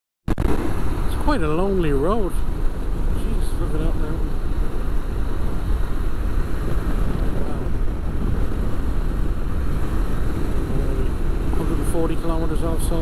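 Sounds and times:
road noise: 0.3 - 13.0
wind rush: 0.3 - 13.0.

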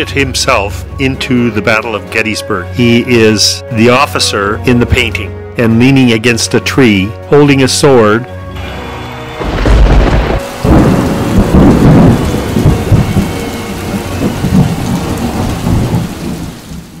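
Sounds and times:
rain-like hiss: 8.8 - 17.0
deep rolling rumbles: 9.4 - 16.9.

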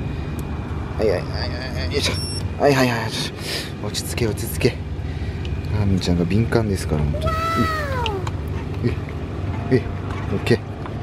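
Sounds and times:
high vocal whine: 7.2 - 8.3.

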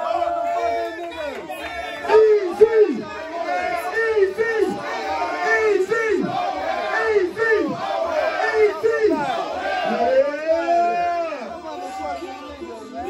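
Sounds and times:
crowd shouting a chant: 0.0 - 13.0.

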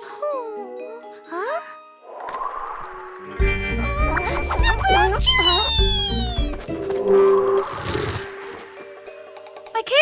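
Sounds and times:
background music: 0.0 - 10.0
cartoon seal pup crying: 3.8 - 6.6.

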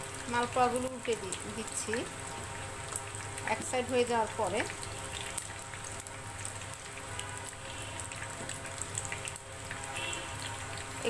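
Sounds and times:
batter sizzling in hot oil: 0.0 - 11.0.

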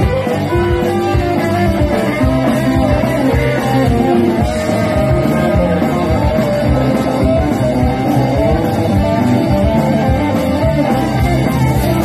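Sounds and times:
rock and roll band playing: 0.0 - 12.0
steady drum beat: 0.0 - 12.0.

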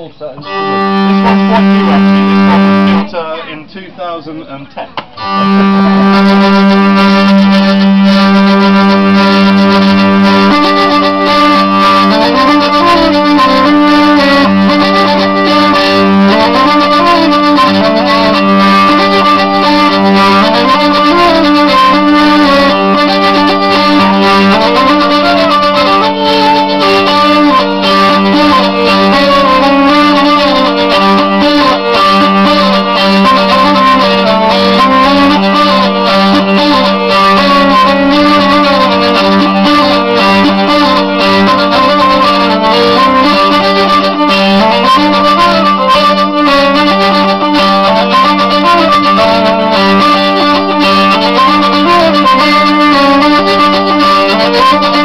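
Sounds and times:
hurdy-gurdy playing a tune: 0.0 - 3.7, 5.1 - 55.0.

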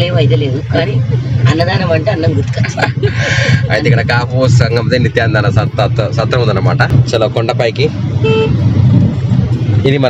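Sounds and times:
car engine and road rumble: 0.0 - 10.0
short horn beep: 8.2 - 8.6.

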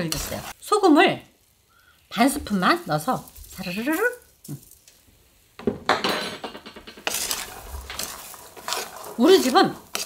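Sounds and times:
wooden spoon scraping a wok: 0.0 - 0.6, 2.3 - 4.9, 6.7 - 10.0.

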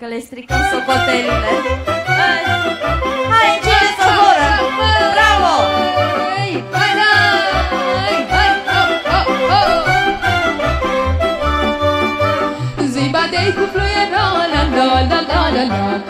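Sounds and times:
lively folk dance music: 0.5 - 16.0.

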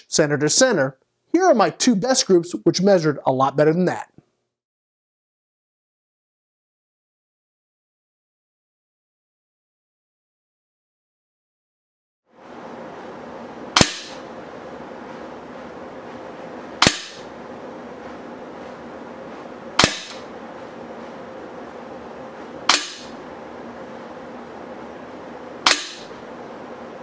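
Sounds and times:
air pistol shots: 13.8 - 14.2, 16.8 - 17.3, 19.8 - 20.3, 22.7 - 23.2, 25.6 - 26.2.

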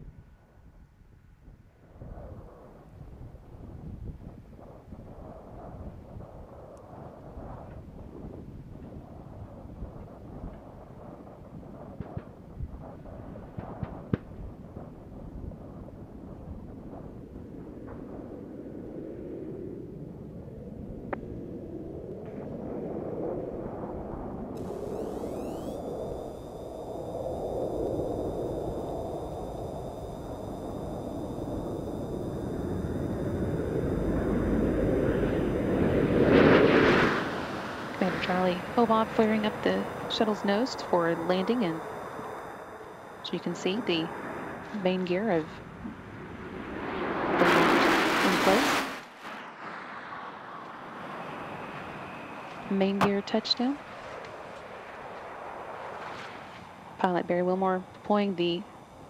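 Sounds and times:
faint high-pitched whines: 1.8 - 59.0
crackles and pops: 4.2 - 18.3, 24.5 - 46.0
rushing rumbling air noise: 18.1 - 59.0.

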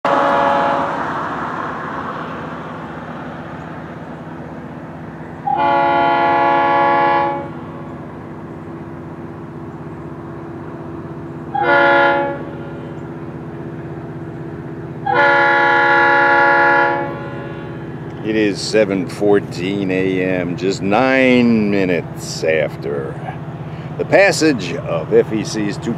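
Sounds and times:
locomotive air horn blasts: 0.0 - 1.3, 5.4 - 8.1, 11.5 - 13.8, 15.0 - 18.8
train rumble: 0.0 - 25.9.

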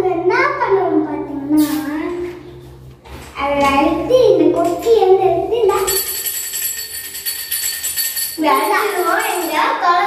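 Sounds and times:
small brass bell ringing: 5.9 - 9.7.

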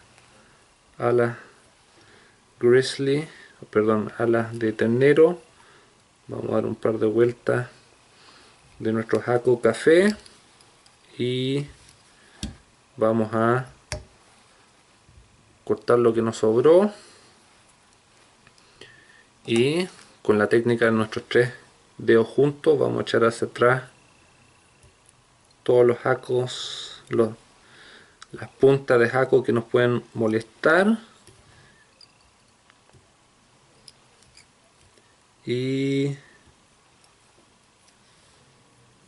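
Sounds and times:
faint room hiss: 0.0 - 39.0.

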